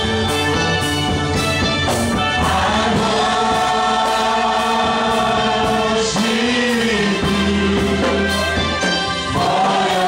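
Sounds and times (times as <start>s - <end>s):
gospel choir singing: 1.9s - 10.0s.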